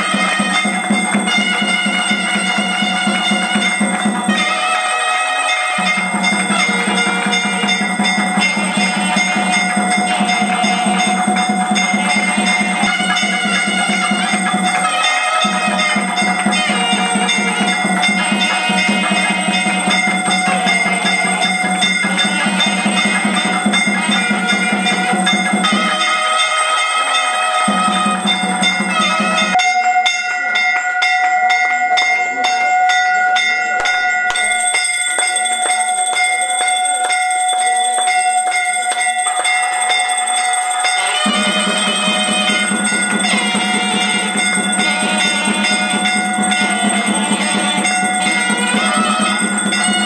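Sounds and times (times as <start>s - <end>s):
devotional music: 0.0s - 50.0s
hand bell ringing: 0.0s - 50.0s.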